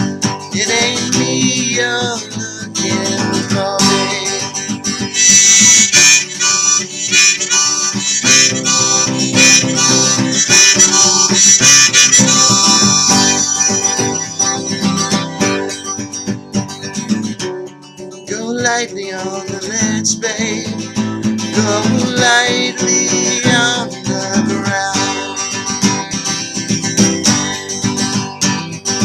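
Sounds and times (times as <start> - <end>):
person singing: 0.0 - 16.2, 18.2 - 26.2
strummed acoustic guitar: 0.0 - 29.0
harmonica playing: 0.6 - 17.3, 19.6 - 29.0.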